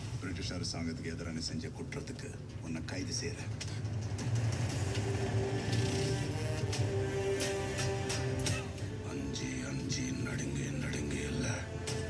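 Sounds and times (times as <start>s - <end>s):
orchestral music: 4.1s - 12.0s.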